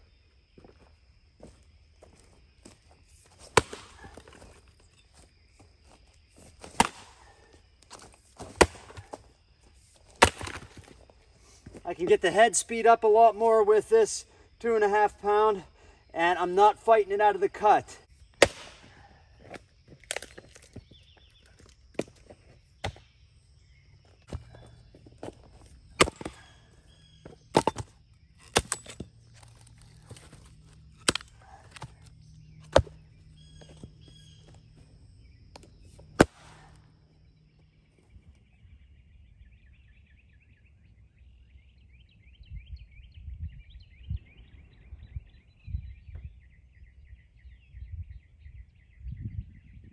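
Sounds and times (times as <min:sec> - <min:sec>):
faint birdsong: 0:00.0 - 0:49.9
axe chopping firewood: 0:03.4 - 0:04.5, 0:06.6 - 0:07.3, 0:07.9 - 0:09.2, 0:10.1 - 0:10.9, 0:18.4 - 0:20.8, 0:22.8 - 0:23.1, 0:25.2 - 0:26.6, 0:27.2 - 0:33.1, 0:35.6 - 0:36.8
low wind noise: 0:42.1 - 0:49.9.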